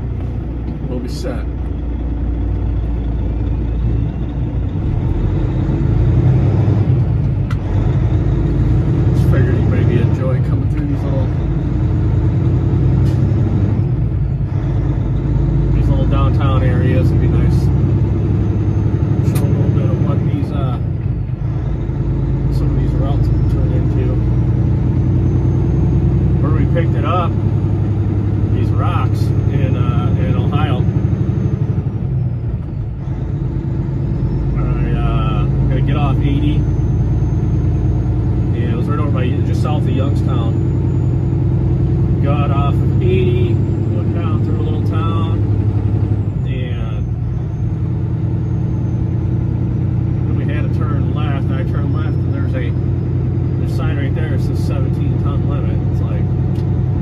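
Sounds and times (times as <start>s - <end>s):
road noise: 0.0s - 57.0s
truck engine running: 0.0s - 57.0s.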